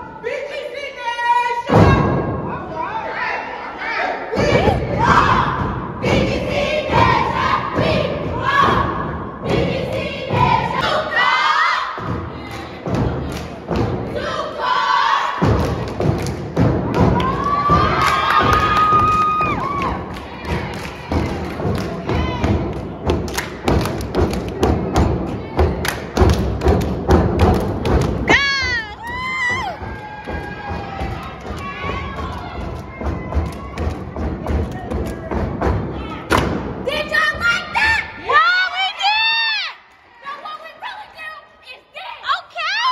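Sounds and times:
crowd cheering and shouting: 0.0s - 9.4s, 16.6s - 22.7s, 28.2s - 42.9s
rhythmic clapping: 9.4s - 11.0s, 12.0s - 14.2s, 15.4s - 36.6s.

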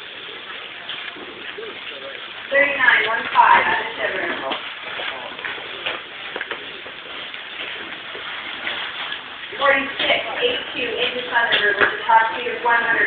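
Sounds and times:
people talking: 0.7s - 6.1s, 9.5s - 13.0s.

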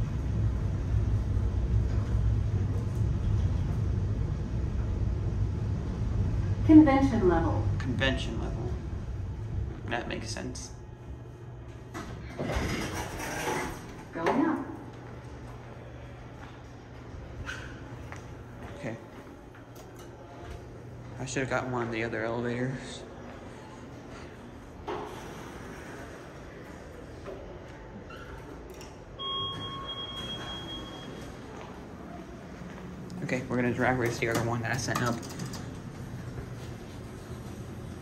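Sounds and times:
low lobby hum: 0.0s - 38.0s
elevator doors sliding open: 11.9s - 14.5s, 33.7s - 38.0s
elevator arrival chime: 29.2s - 31.5s.

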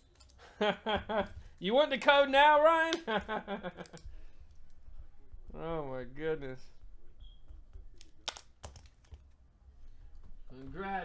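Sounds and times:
man laughing: 0.4s - 1.4s, 3.0s - 4.0s.

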